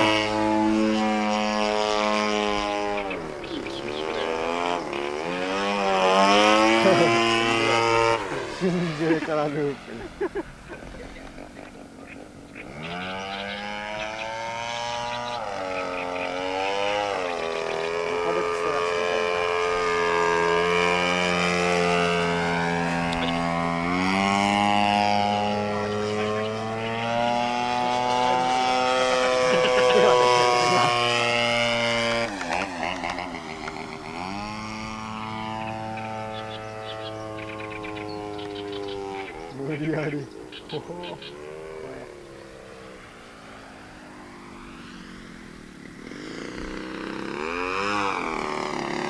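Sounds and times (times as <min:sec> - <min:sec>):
model airplane engine buzzing: 0:00.0 - 0:49.0.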